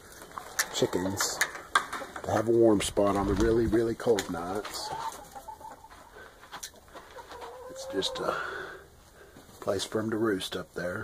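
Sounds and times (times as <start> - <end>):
chickens clucking: 0.0 - 10.8.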